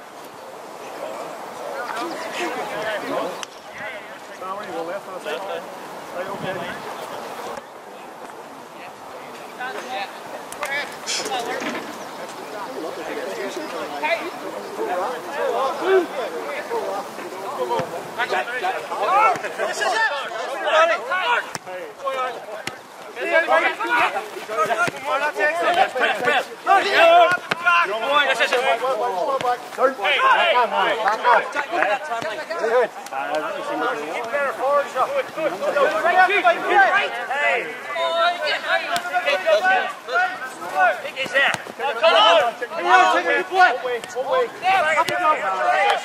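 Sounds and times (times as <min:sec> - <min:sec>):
voices talking and calling out: 0:00.0 - 0:46.0.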